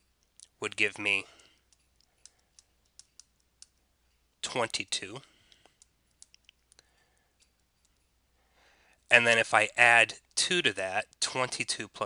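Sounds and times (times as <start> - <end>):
stylus tapping tablet screen: 1.5 - 8.2.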